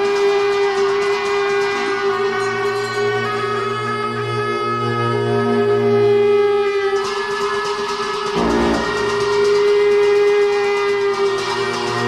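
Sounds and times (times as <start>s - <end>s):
low drone: 8.2s - 10.0s
reedy wind instrument note: 8.4s - 9.4s.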